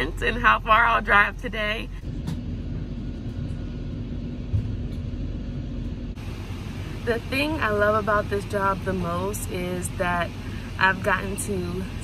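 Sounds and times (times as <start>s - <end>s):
steady hum: 0.0s - 12.0s
vehicle rumble from inside cab: 0.0s - 12.0s.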